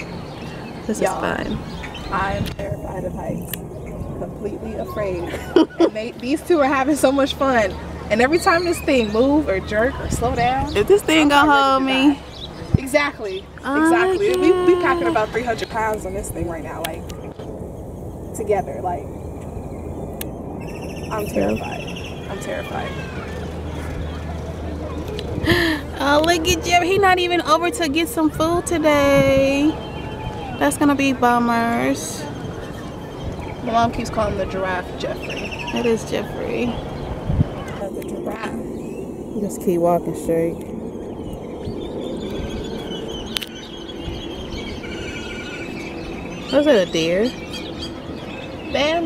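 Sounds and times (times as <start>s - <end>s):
low outdoor rumble: 0.0s - 49.0s.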